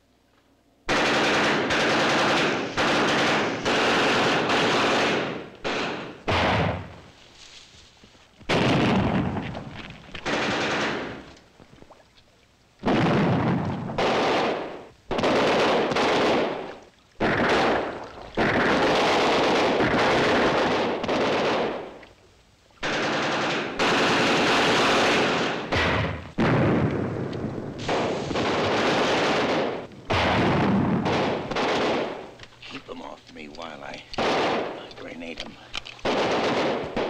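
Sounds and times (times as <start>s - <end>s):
machine-gun fire bursts: 0.9s - 7.0s, 8.5s - 9.5s, 10.2s - 11.3s, 12.8s - 22.0s, 22.8s - 32.4s, 34.2s - 34.8s, 36.0s - 37.0s.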